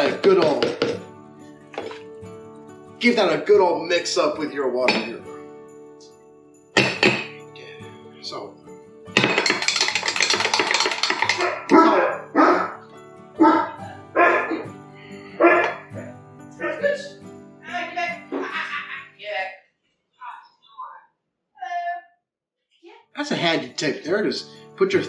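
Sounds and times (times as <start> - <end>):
background music: 0.0 - 19.6, 23.2 - 25.0
metal spoon stirring in glass jar: 9.2 - 11.8.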